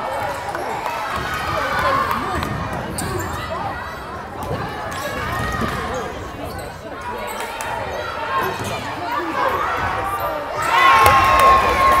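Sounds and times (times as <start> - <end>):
sneakers squeaking: 0.1 - 10.8.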